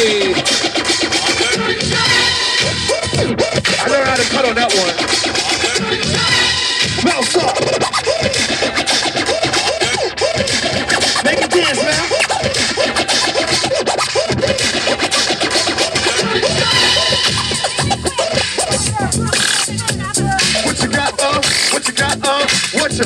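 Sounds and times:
hip-hop beat: 0:00.0 - 0:23.0
turntable scratching: 0:00.0 - 0:23.0.

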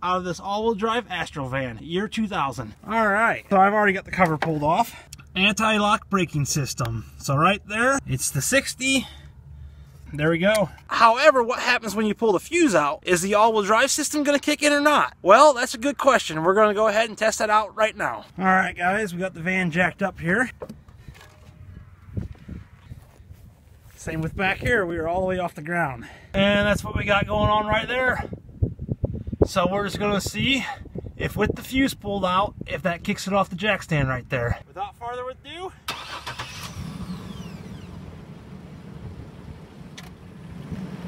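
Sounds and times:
van engine idling: 0:35.9 - 0:41.0
steady low rumble: 0:37.8 - 0:41.0.

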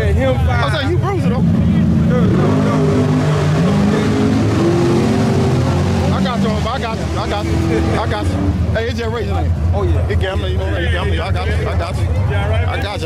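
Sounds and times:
racing car engine revving: 0:00.0 - 0:13.0.

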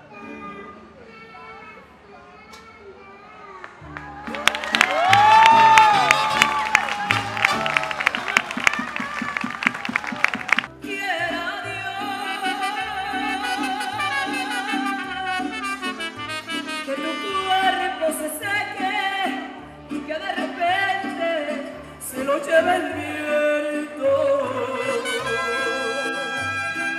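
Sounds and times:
mariachi music with singing: 0:00.0 - 0:02.8, 0:03.6 - 0:26.9.

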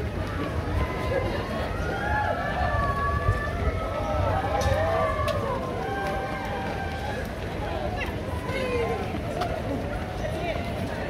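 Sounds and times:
runners' footfalls: 0:00.0 - 0:11.0.

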